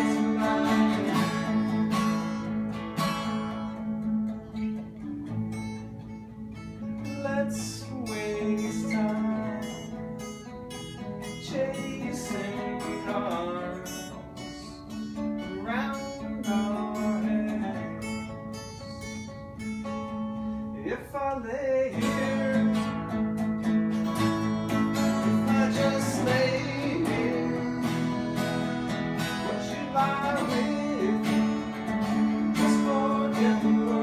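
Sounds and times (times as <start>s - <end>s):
acoustic guitars playing: 0.0s - 34.0s.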